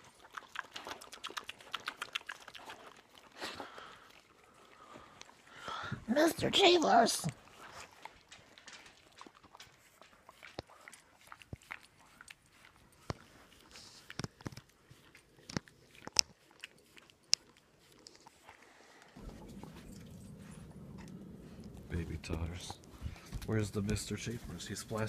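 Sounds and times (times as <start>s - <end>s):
dog chewing with crunches: 0.0s - 5.6s, 6.4s - 25.0s
steady low rumble: 19.2s - 25.0s.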